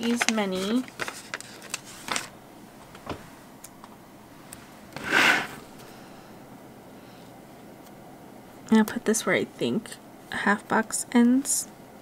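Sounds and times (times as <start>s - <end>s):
paper rasp: 5.0s - 5.6s.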